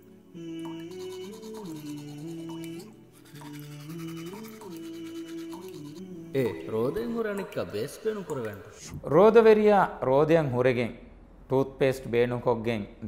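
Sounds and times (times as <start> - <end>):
slow background music: 0.0 - 8.9
toothbrush scrubbing teeth: 0.7 - 6.0.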